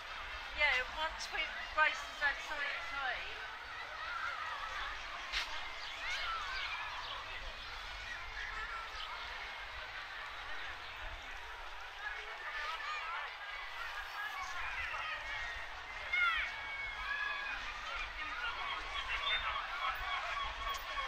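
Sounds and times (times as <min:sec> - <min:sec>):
crowd talking: 0:00.0 - 0:21.0.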